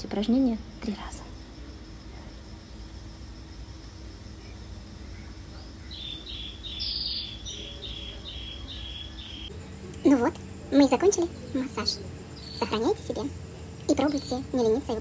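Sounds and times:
low background noise: 0:00.0 - 0:15.0
small bird chirping: 0:04.3 - 0:15.0.

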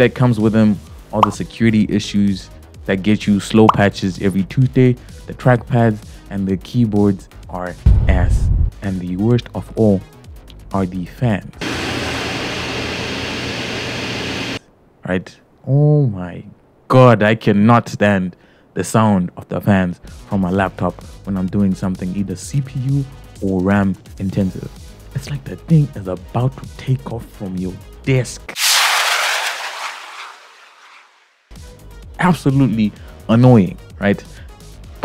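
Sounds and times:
low hum: 0:07.9 - 0:08.7
jet airliner taking off: 0:11.6 - 0:14.6, 0:28.6 - 0:31.4
laptop cooling fans whooshing: 0:28.6 - 0:31.0.

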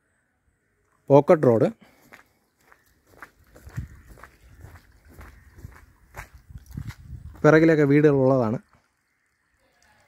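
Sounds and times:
footsteps on sandy dirt path: 0:01.8 - 0:07.9.

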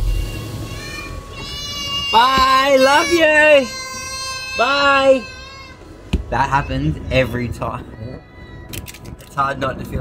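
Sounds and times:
low rumble in car cabin: 0:00.0 - 0:08.2.

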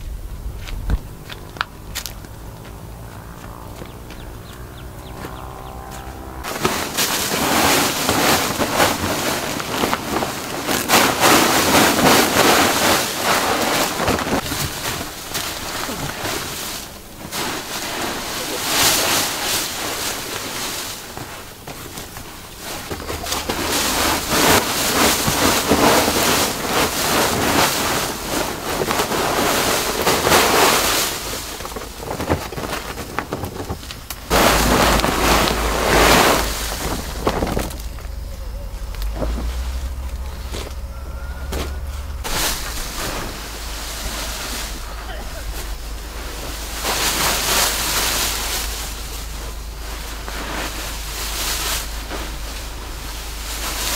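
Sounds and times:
leaves and plastic sack rustling: 0:00.0 - 0:53.9.

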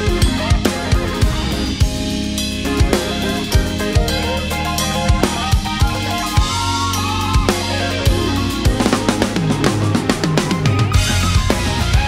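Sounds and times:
band backing track with guitar: 0:00.0 - 0:12.0
drum kit groove: 0:00.0 - 0:12.0.

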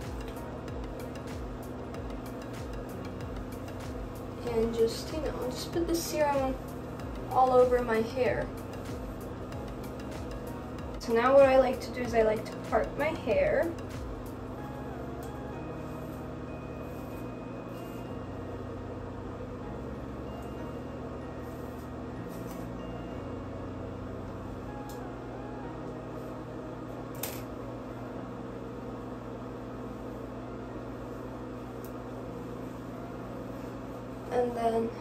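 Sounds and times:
quiet background music: 0:00.0 - 0:35.0
steady hum: 0:00.0 - 0:35.0.

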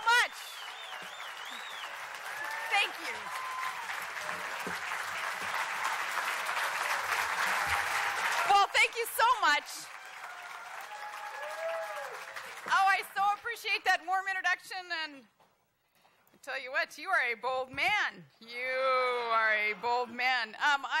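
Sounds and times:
audience applauding: 0:00.0 - 0:13.6.

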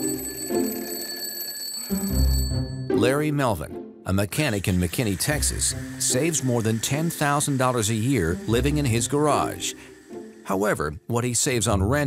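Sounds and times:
alarm clock ringing: 0:00.0 - 0:03.4, 0:04.3 - 0:10.8.

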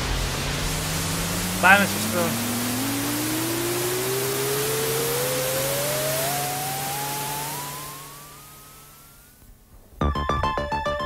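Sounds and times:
rocket hiss with rising whistle: 0:00.0 - 0:09.3
low steady hum: 0:00.0 - 0:09.4.

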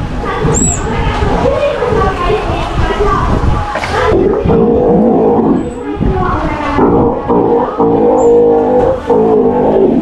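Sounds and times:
sea lion calling: 0:04.1 - 0:06.0, 0:06.6 - 0:10.0.

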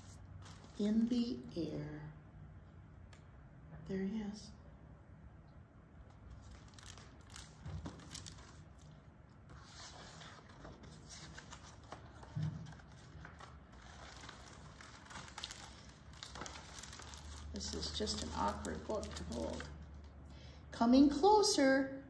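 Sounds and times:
paper pages rustling: 0:06.3 - 0:19.8.

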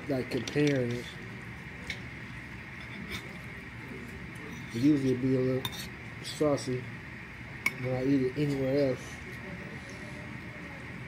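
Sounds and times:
steady background hum: 0:00.0 - 0:11.0.

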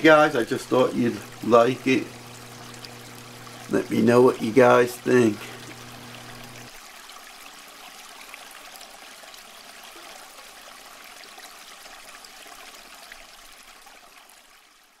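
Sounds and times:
aquarium water trickling: 0:00.0 - 0:15.0.

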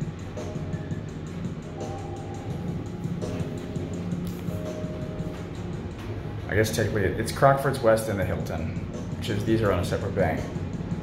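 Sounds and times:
elevator low rumble: 0:00.0 - 0:11.0
soft music: 0:00.0 - 0:11.0.

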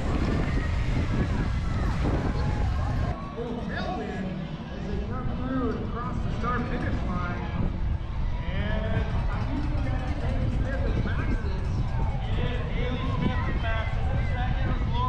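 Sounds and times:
wind rumbling on microphone: 0:00.0 - 0:15.0.

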